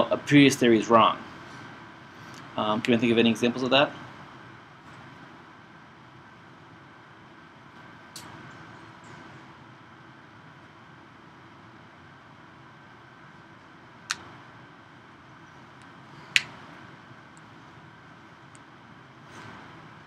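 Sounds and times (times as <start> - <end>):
room hum: 0.0 - 20.0.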